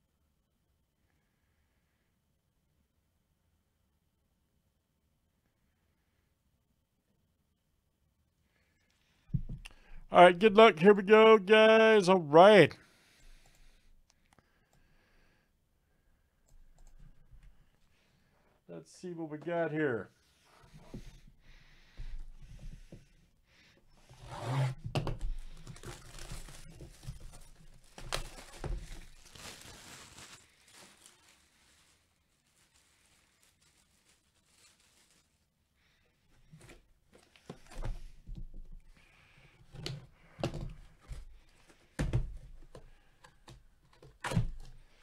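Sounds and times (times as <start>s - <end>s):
cardboard tearing and rustling: 25.4s - 35.3s.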